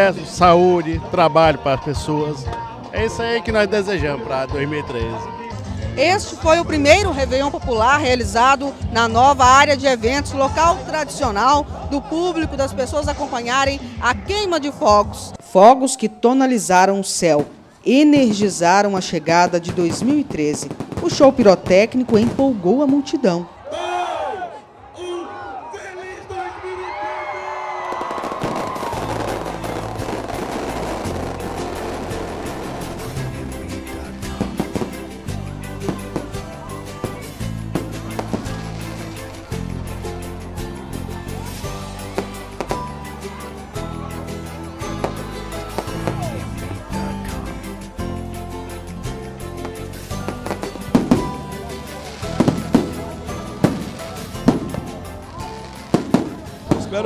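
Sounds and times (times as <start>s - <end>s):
background music: 0.0s - 25.6s, 26.2s - 57.0s
fireworks crackling and popping: 17.3s - 23.1s, 27.8s - 40.3s, 41.3s - 43.6s, 44.8s - 47.0s, 49.6s - 57.0s
music with sustained bass: 29.0s - 56.0s.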